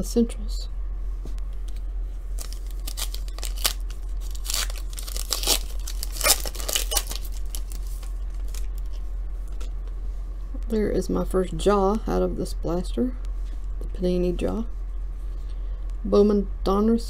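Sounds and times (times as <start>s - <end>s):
steady low hum: 0.0s - 17.0s
foil wrapper tearing and crinkling: 2.4s - 8.9s.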